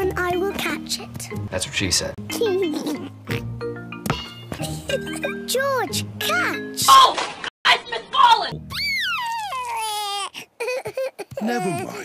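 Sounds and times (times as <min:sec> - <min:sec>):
cartoon piglet wailing: 0:08.7 - 0:12.0.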